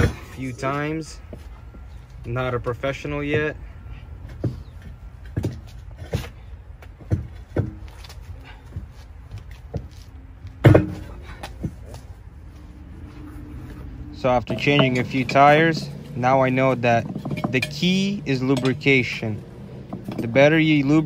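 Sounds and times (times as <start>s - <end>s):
tire irons clanking on steel wheel: 0.0s - 9.9s, 10.5s - 12.2s, 13.0s - 21.0s.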